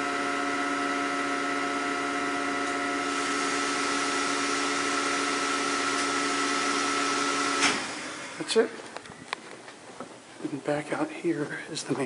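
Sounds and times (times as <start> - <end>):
elevator motor hum and whine: 0.0 - 9.3.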